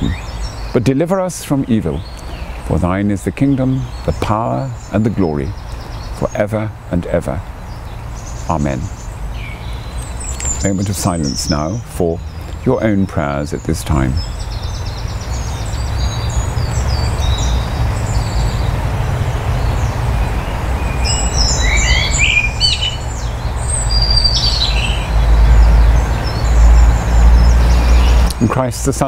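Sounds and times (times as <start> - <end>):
small birds chirping: 0.0 - 29.0
steady low rumble: 0.0 - 29.0.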